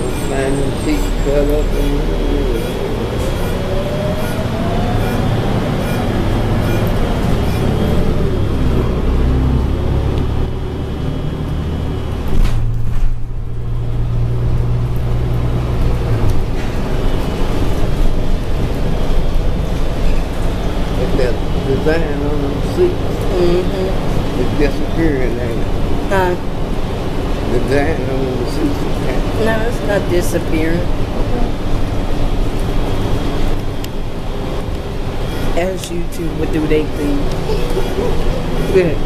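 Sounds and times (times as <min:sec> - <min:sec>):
bus drivetrain hum: 0:00.0 - 0:39.0
road noise: 0:00.0 - 0:39.0.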